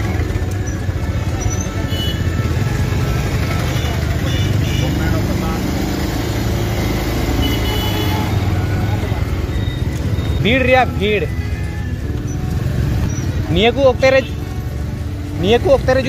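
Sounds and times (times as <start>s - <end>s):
horn toots: 0.0s - 14.6s
crowd voices: 0.0s - 16.0s
engines running: 0.0s - 16.0s.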